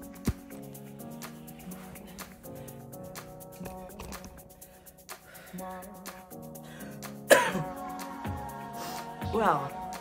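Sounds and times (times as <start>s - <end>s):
background music with held notes: 0.0s - 10.0s
woman coughing: 7.3s - 7.8s.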